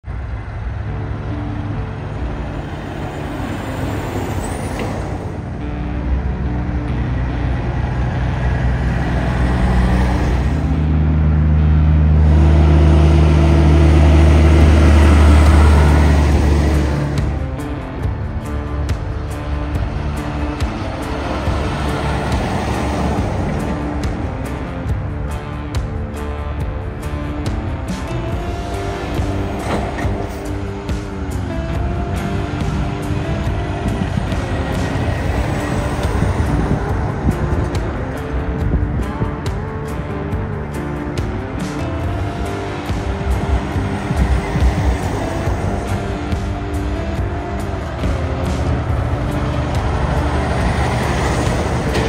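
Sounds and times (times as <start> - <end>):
music playing: 0.0 - 52.0
truck diesel engine: 0.0 - 52.0.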